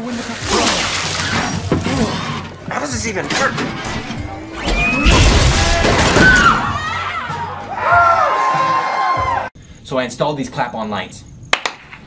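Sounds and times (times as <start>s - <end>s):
background music: 0.0s - 9.5s
table collapsing crash: 3.3s - 6.8s.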